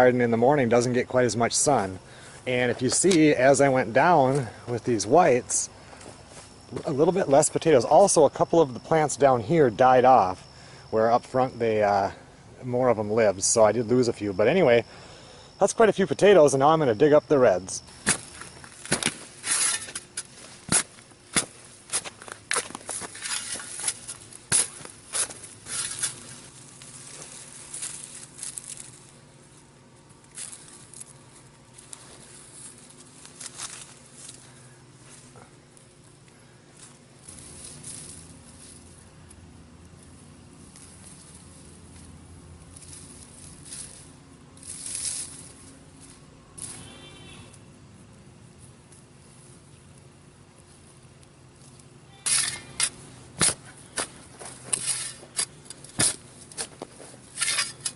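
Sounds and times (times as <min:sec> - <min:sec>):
hands rustling in loose soil: 0:00.0 - 0:09.2, 0:17.6 - 0:57.9
shovel digging into soil: 0:18.0 - 0:29.0, 0:52.2 - 0:57.9.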